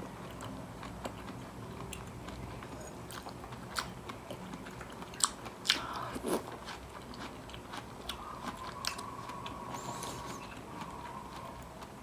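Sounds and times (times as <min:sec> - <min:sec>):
wet chewing: 0:00.3 - 0:12.0.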